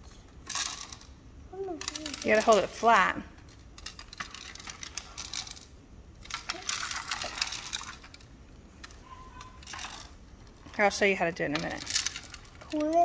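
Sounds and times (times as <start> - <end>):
plastic toy clicking and rattling: 0.4 - 13.0.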